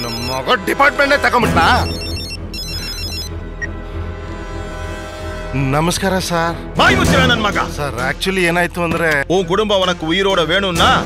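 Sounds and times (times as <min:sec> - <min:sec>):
phone ringtone beeping: 0:00.0 - 0:00.8, 0:01.4 - 0:03.8.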